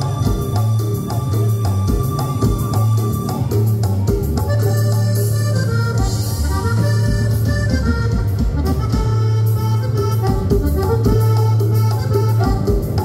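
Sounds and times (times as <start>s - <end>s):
cumbia music with accordion: 0.0s - 13.0s.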